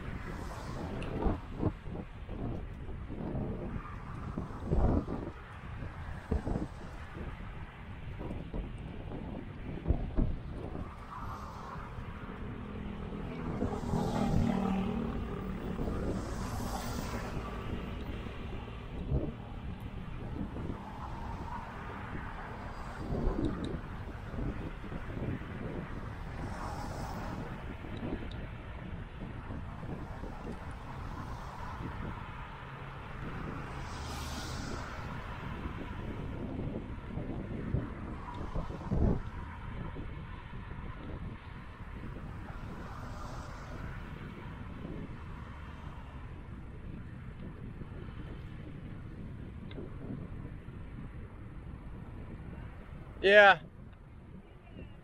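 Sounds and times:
cars passing with tyre hiss: 0.0s - 8.2s, 8.8s - 53.6s
low thuds of wind gusts: 0.0s - 55.0s
wind buffeting microphone: 0.0s - 55.0s.

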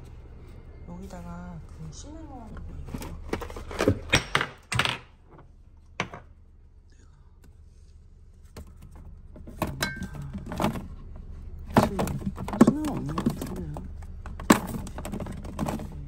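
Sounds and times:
jars clacking and knocking: 9.4s - 11.0s, 11.7s - 16.0s.

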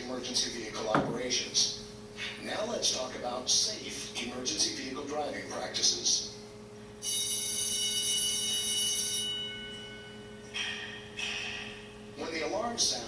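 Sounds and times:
bell-like electronic chime: 7.0s - 11.9s.

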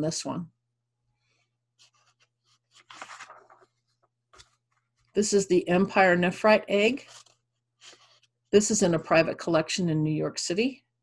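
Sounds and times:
soft scratching or rustling: 1.3s - 5.2s, 7.0s - 8.6s.

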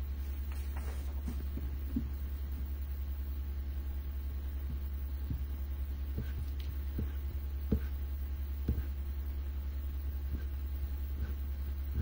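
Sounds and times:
pulsing low hum: 1.1s - 12.0s.

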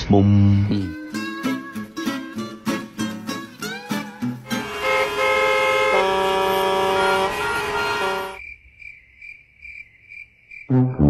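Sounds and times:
cricket chirping effect: 8.4s - 11.0s.

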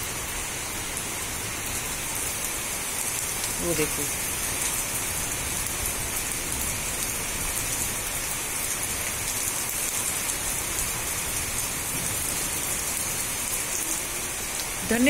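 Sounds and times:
rain on plants and leaves: 0.0s - 15.0s.

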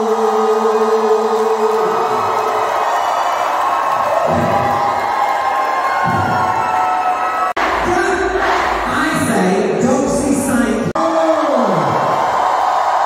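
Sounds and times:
crowd cheering and whooping: 0.0s - 8.8s, 11.1s - 13.0s.

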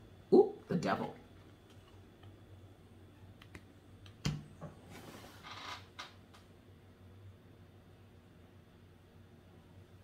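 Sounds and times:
soft rustle: 4.8s - 5.7s.

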